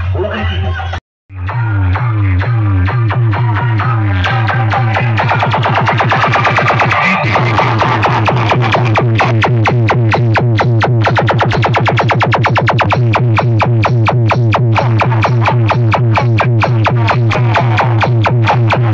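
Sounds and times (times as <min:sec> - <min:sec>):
electronic dance music: 0:00.0 - 0:18.9.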